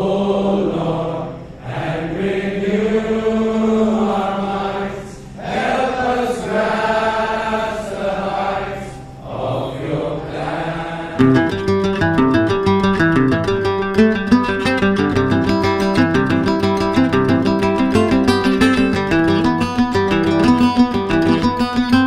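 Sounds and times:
congregation singing a hymn: 0.0 - 11.2.

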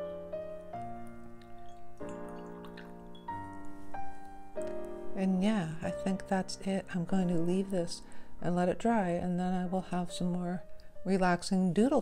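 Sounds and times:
soft piano music: 0.0 - 12.0.

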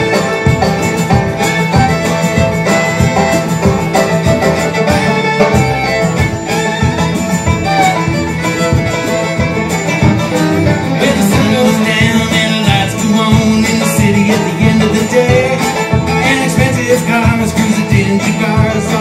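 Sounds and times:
banjo picking fast run: 0.0 - 19.0
bluegrass band playing: 0.0 - 19.0.

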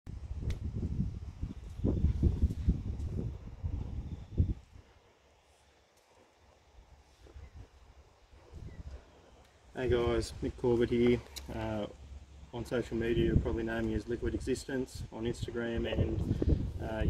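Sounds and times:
wind rumbling on microphone: 0.1 - 5.1, 6.7 - 17.0.

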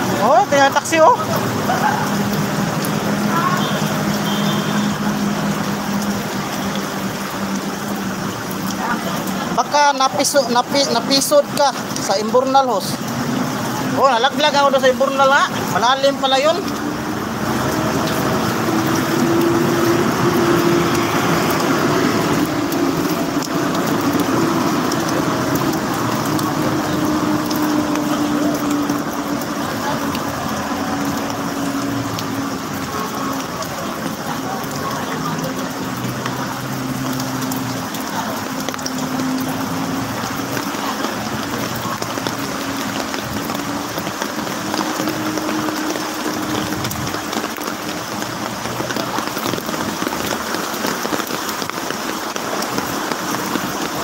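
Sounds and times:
floodwater splashing and rushing: 0.0 - 54.0
vehicle engine humming: 10.9 - 54.0.

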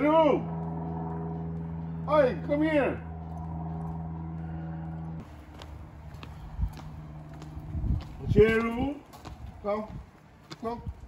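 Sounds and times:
low mechanical hum: 0.0 - 11.0
footsteps on concrete: 0.5 - 11.0.

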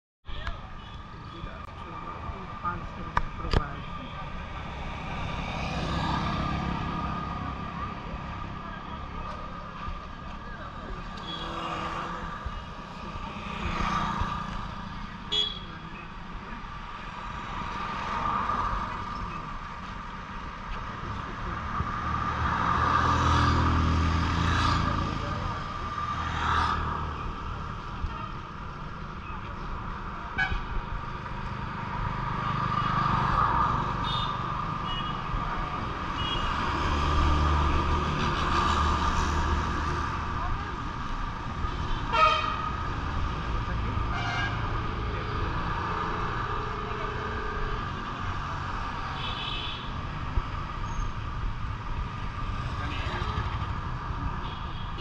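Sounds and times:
highway traffic: 0.2 - 55.0.

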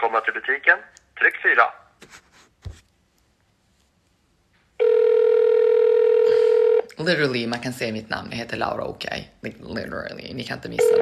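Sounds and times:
telephone line tone: 4.8 - 6.9, 10.8 - 11.0.

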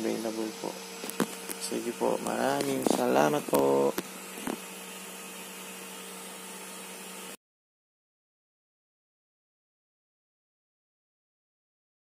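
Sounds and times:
small cooling fan humming: 0.0 - 7.4.

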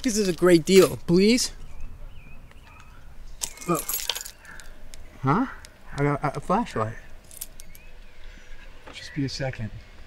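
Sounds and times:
car keys jangling: 3.4 - 4.7, 7.2 - 7.9.

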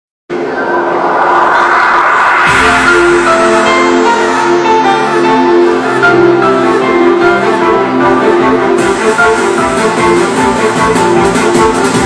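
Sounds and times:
music with low thump: 2.5 - 6.5.

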